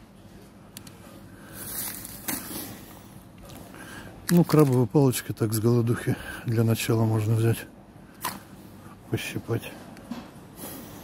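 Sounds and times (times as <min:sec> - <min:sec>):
store background noise: 0:00.0 - 0:11.0
plastic wrapping rustling: 0:01.5 - 0:03.7, 0:04.3 - 0:05.1.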